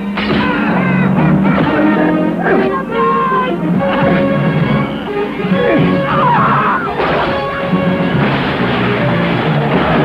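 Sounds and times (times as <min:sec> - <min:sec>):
music: 0:00.0 - 0:10.0
cars smashing through wooden boards: 0:06.9 - 0:10.0.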